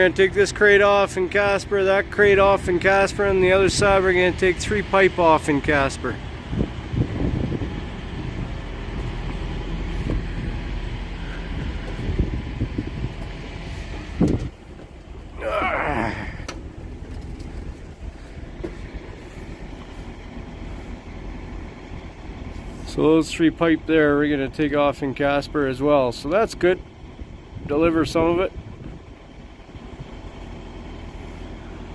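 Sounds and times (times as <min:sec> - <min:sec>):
diesel truck engine idling: 0:00.0 - 0:31.9
low background rumble: 0:00.0 - 0:31.9.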